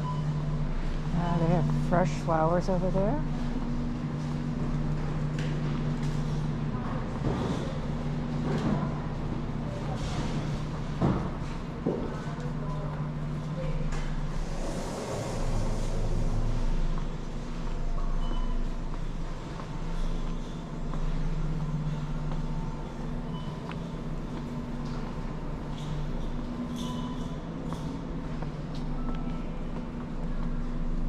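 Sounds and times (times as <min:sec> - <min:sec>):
low mechanical hum: 0:00.0 - 0:31.0
faint short beeps: 0:18.2 - 0:18.7.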